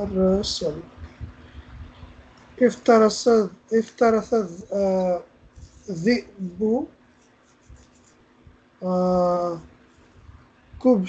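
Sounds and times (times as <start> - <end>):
person saying uh: 0.0 - 2.0, 2.6 - 5.2, 5.9 - 6.8, 8.8 - 9.6.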